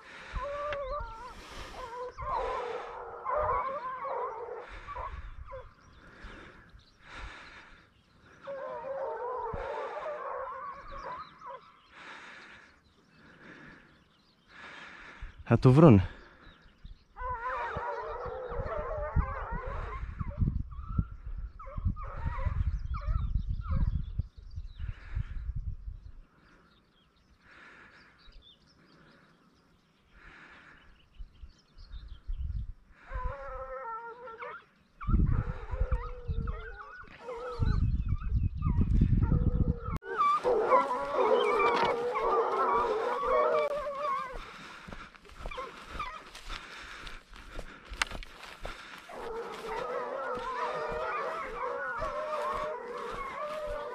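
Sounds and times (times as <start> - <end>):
hounds baying: 0.0 - 15.2, 15.8 - 24.0, 33.0 - 53.9.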